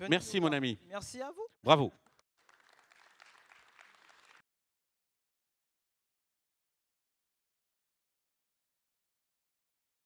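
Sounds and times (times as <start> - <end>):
audience applause: 2.1 - 4.4.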